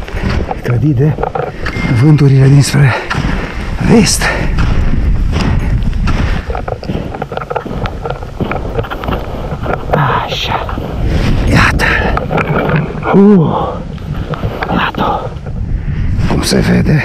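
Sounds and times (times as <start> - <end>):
footsteps crunching in snow: 0.0 - 13.1
wind buffeting microphone: 0.0 - 17.0.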